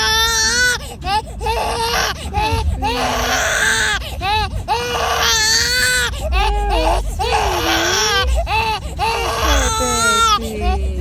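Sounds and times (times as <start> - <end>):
infant crying: 0.0 - 11.0.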